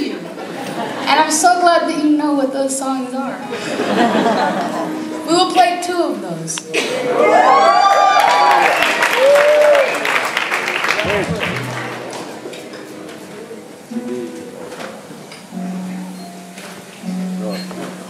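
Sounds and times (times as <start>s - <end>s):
audience cheering and whooping: 7.0s - 12.2s
acoustic guitar plucked: 11.0s - 18.0s.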